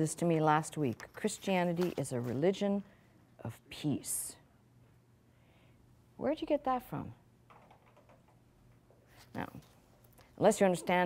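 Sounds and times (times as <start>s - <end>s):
faint clicks and rustles: 0.8s - 2.5s.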